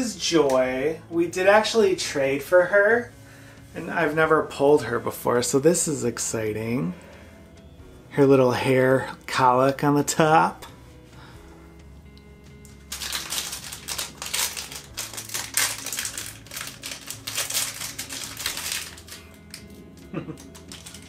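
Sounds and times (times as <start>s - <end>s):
plastic packaging crinkling and tearing: 12.6s - 21.0s.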